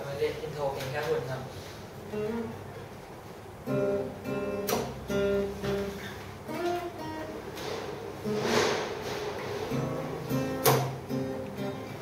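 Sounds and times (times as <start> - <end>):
acoustic guitar chords: 2.0 - 12.0
bright guitar strum: 2.1 - 2.6, 3.7 - 12.0.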